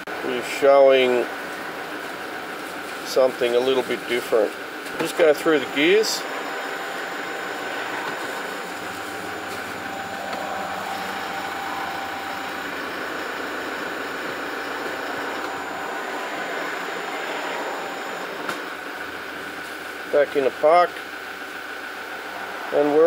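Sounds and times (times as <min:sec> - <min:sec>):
faint steady whine: 0:00.0 - 0:23.0
diesel engine idling: 0:05.5 - 0:23.0.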